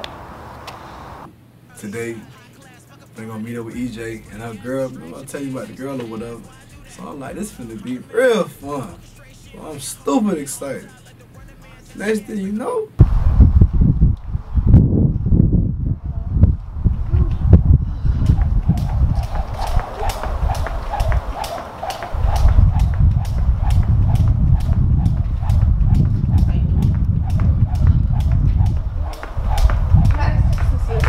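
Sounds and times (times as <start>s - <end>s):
wind rumble on microphone: 13.0s - 31.0s
jump rope slapping concrete: 18.2s - 31.0s.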